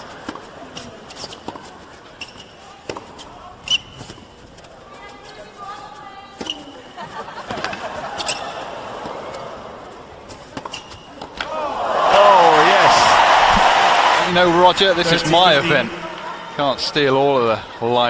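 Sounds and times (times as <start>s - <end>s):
shoes squeaking on court: 0.0s - 11.4s
crowd voices: 4.6s - 18.0s.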